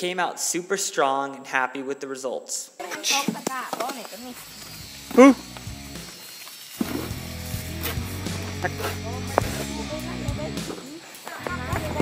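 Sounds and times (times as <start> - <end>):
brief voices: 5.1 - 5.4
person laughing loudly: 5.1 - 5.4, 8.3 - 9.7
background music: 6.8 - 12.0.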